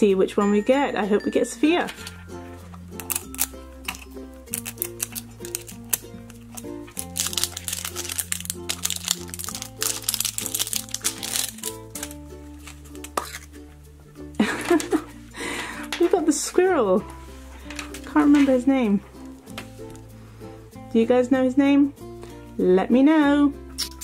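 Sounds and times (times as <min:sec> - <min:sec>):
wrapper crinkling: 0:03.0 - 0:13.6, 0:17.3 - 0:20.1.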